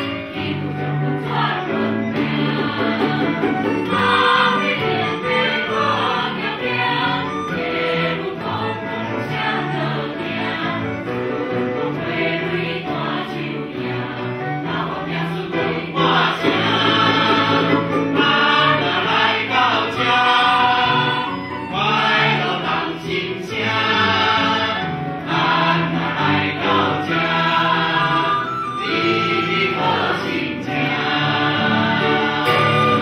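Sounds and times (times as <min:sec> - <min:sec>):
mixed choir singing: 0:00.0 - 0:33.0
small instrumental ensemble: 0:00.0 - 0:33.0.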